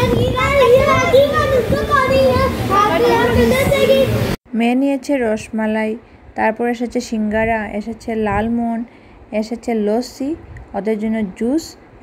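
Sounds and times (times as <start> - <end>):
busy room background noise: 0.0 - 12.0.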